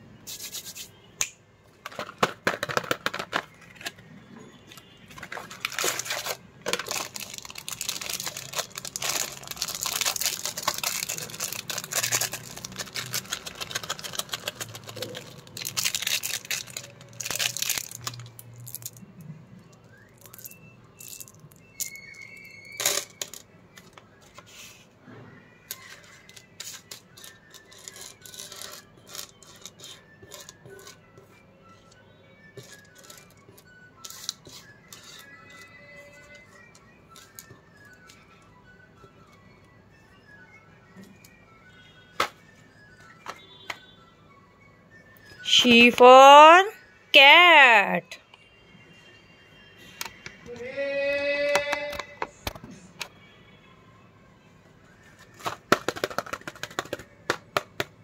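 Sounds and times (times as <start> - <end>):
candy wrappers crinkling and tearing: 5.2 - 19.1, 19.9 - 23.4, 25.7 - 31.0, 32.6 - 33.4, 55.3 - 57.6.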